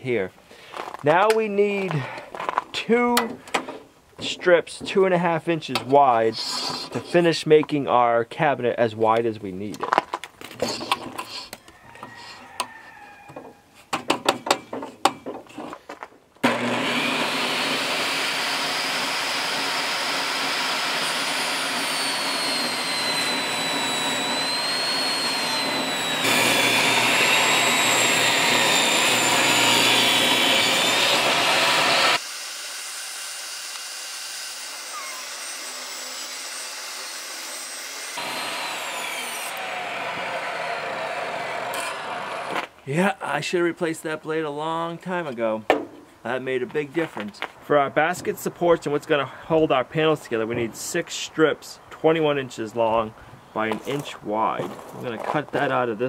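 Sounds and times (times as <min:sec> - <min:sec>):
board and fence knocking: 0:13.3 - 0:15.5
table saw cutting wood: 0:16.4 - 0:42.7.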